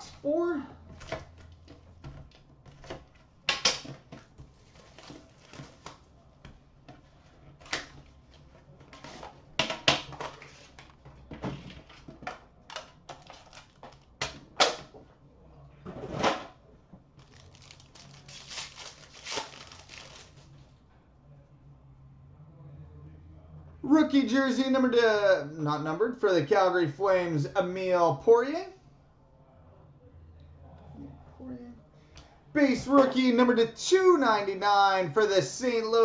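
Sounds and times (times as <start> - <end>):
wrapping rustling and tearing: 4.4 - 6.1, 13.1 - 14.1, 17.2 - 20.6.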